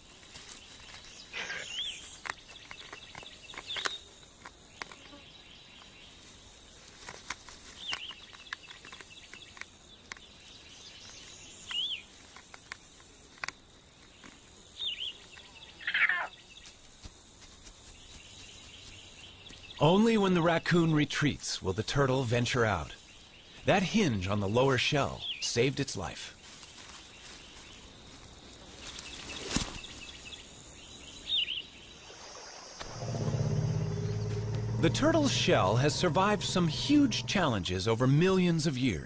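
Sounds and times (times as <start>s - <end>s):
falling bird calls: 0.0s - 4.1s, 14.1s - 16.7s, 32.8s - 38.7s
faint clicks and rustles: 0.0s - 5.2s, 5.8s - 10.3s
bird chirps: 29.0s - 32.0s, 32.8s - 38.0s.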